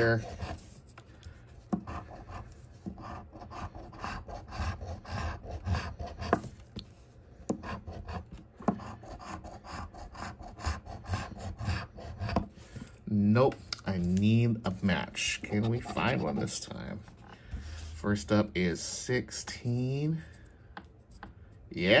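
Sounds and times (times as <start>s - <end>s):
coin scratching lottery ticket: 15.4s - 16.6s.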